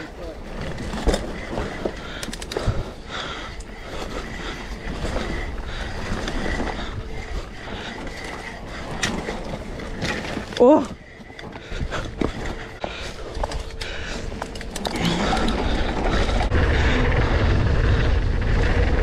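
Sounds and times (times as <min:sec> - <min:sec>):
bike chain and frame rattling: 0:00.0 - 0:19.0
bike tyres rolling over dirt: 0:00.0 - 0:19.0
wind on microphone: 0:16.1 - 0:19.0.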